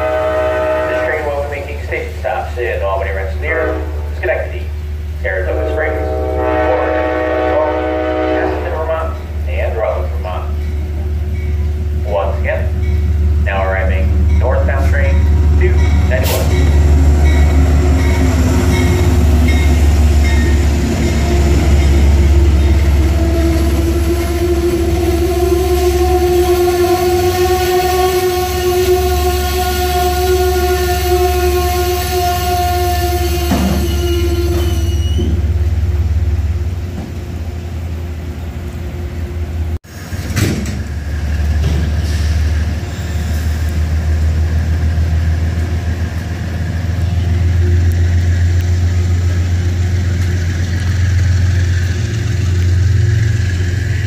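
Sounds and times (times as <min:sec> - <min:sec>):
train horn: 0:00.0 - 0:02.0, 0:05.3 - 0:09.2, 0:13.6 - 0:35.5
train rumbling past: 0:00.0 - 0:54.0.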